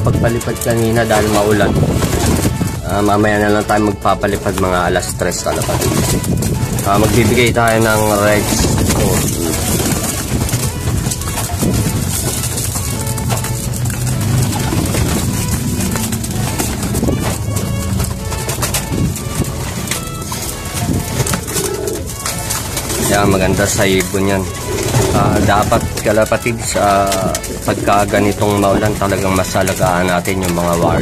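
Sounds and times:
wings fluttering: 0:00.0 - 0:03.1, 0:04.4 - 0:31.0
pigeons cooing: 0:00.6 - 0:03.6, 0:04.2 - 0:31.0.

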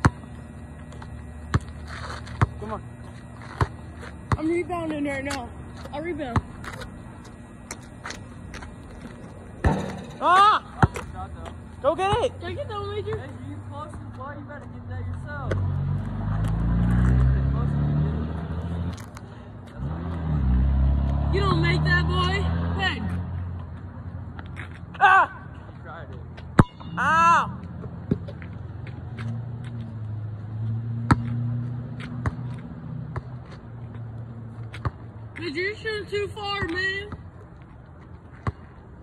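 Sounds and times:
basketball bouncing on asphalt: 0:00.0 - 0:17.4, 0:26.1 - 0:27.0, 0:27.6 - 0:39.0
motor engine droning: 0:15.5 - 0:23.7.

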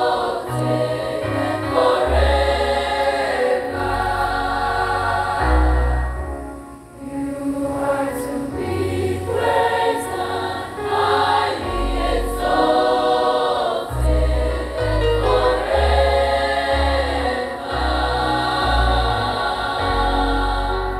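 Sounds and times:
girls' choir singing a hymn: 0:00.0 - 0:20.9.

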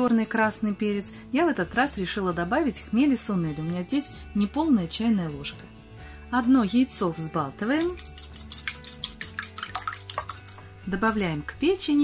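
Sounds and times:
egg sloshing: 0:07.6 - 0:11.0
fork tapping ceramic bowl: 0:07.8 - 0:10.7.

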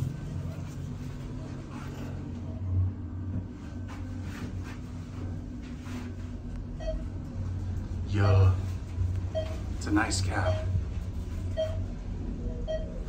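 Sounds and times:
elevator car humming: 0:00.0 - 0:13.0.

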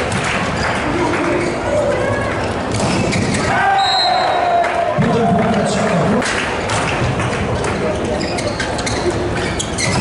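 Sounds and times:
players shouting: 0:03.4 - 0:05.7
referee's whistle: 0:03.8 - 0:04.4.

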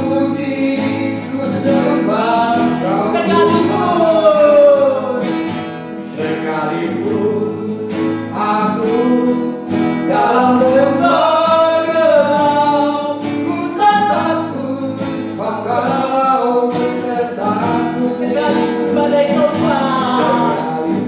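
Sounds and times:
strummed acoustic guitar: 0:00.0 - 0:21.0
woman and man singing: 0:00.0 - 0:21.0.

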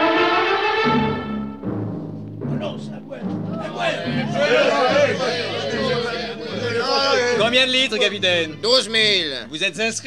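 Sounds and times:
low timpani drum notes: 0:00.8 - 0:06.0.

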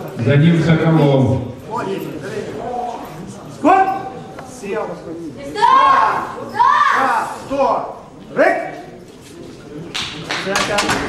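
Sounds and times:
voices: 0:00.0 - 0:11.0
people clapping: 0:09.9 - 0:11.0.

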